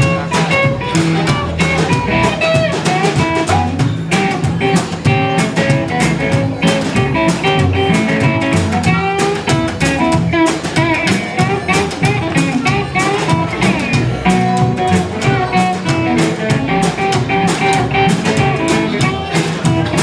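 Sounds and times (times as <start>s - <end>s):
electric guitar: 0.0s - 20.0s
plucked upright double bass: 0.0s - 20.0s
snare drum kit: 0.0s - 20.0s.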